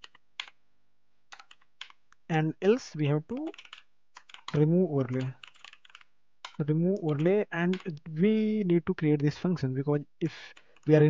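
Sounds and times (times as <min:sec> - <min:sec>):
computer keyboard keystrokes: 0:00.0 - 0:00.6, 0:01.3 - 0:02.0, 0:03.3 - 0:08.0.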